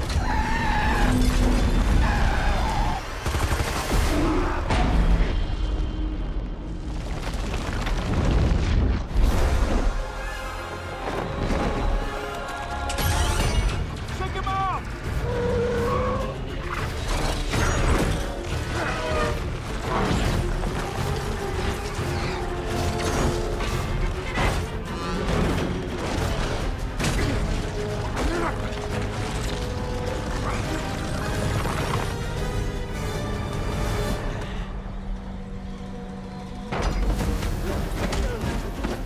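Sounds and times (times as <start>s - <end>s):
film score: 0.0s - 39.0s.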